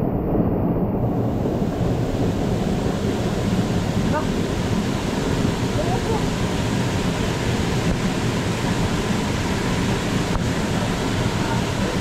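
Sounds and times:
waterfall roaring: 0:01.1 - 0:12.0.

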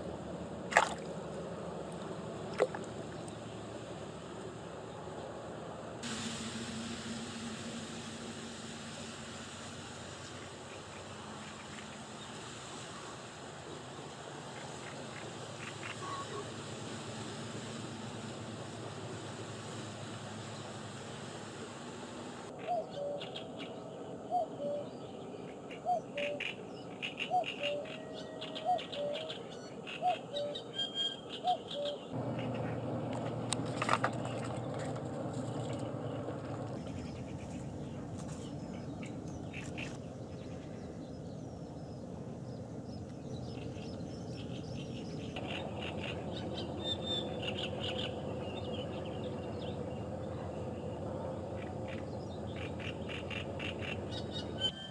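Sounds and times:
outdoor background: 0:00.0 - 0:54.9
bird call: 0:14.8 - 0:16.5, 0:25.7 - 0:32.8.

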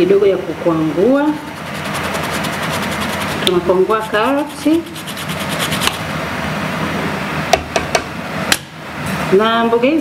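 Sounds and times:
carrot rasping on a grater: 0:01.3 - 0:06.1.

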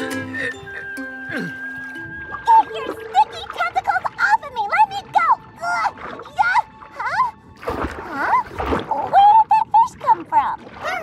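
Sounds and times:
squeaky gliding comic notes: 0:00.0 - 0:04.5
cartoon music: 0:00.0 - 0:07.4.

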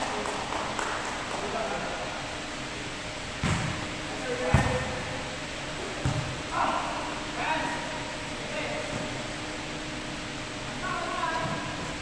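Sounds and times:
volleyball slaps: 0:03.4 - 0:05.0, 0:05.9 - 0:06.5.

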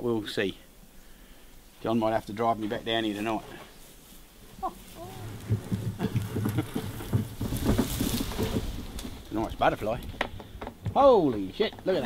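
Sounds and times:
wheelie bin rattling over ground: 0:04.4 - 0:12.0.

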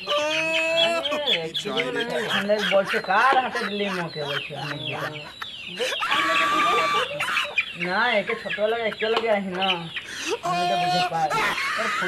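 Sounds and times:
chicken squawking: 0:00.0 - 0:12.0.

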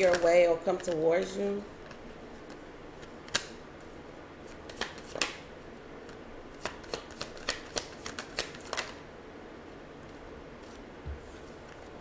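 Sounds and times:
cards clicking and snapping: 0:01.9 - 0:03.6, 0:04.7 - 0:05.4, 0:06.0 - 0:09.0.

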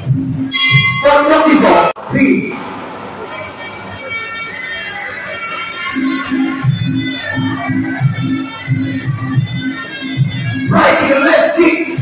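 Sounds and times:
drums beating a steady rhythm: 0:00.0 - 0:02.0, 0:06.0 - 0:12.0.

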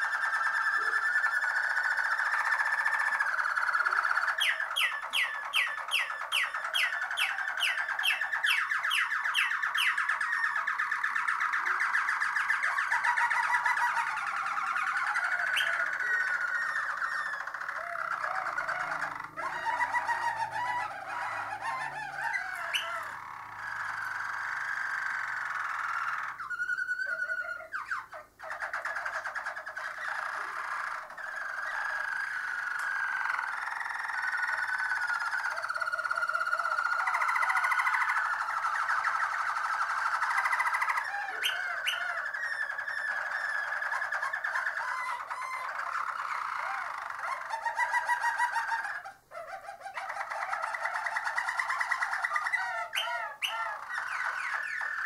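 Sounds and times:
canary singing rolling trills: 0:00.0 - 0:55.0.

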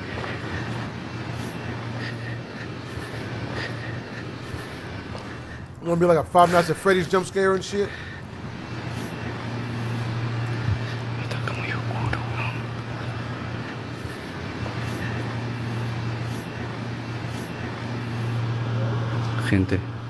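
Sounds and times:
man's hushed voice: 0:00.0 - 0:08.2, 0:09.8 - 0:14.0
steady low hum: 0:00.0 - 0:20.0.

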